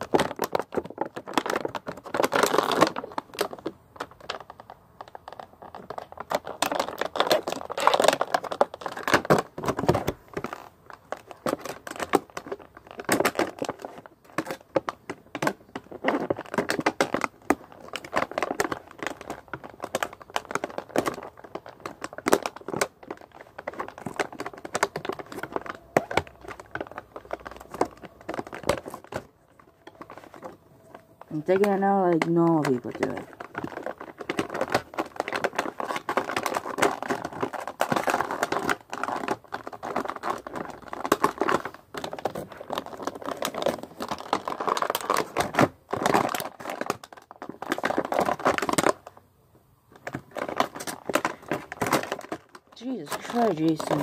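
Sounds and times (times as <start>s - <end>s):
plastic packaging crinkling and tearing: 0.0s - 49.3s, 49.9s - 54.0s.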